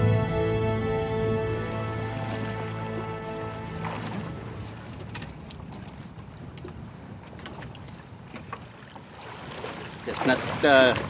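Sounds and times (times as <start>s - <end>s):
wind and sea: 0.0s - 11.0s
water splashing against boat: 1.3s - 11.0s.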